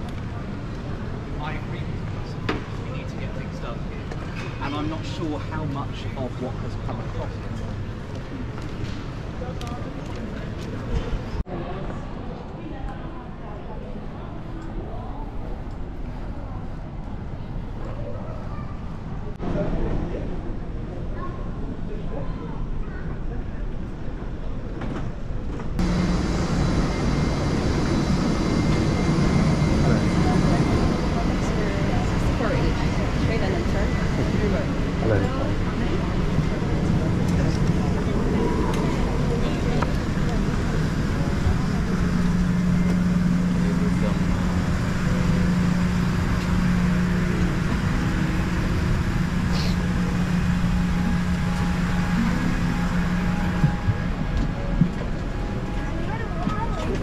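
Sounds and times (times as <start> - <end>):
indistinct chatter of passengers: 0.0 - 57.0
aircraft cabin air conditioning drone: 25.2 - 57.0
terminal ambience: 25.8 - 57.0.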